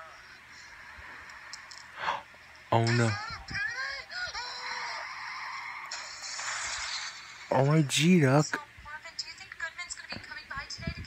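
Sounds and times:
steady hiss through tv speaker: 0.0 - 11.0.

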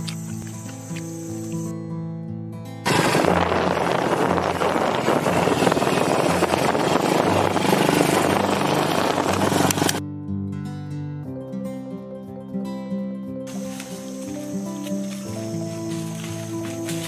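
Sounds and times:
background music: 0.2 - 17.0
motorbike running: 2.9 - 10.0, 13.5 - 17.0
wind rushing over microphone: 2.9 - 10.0.

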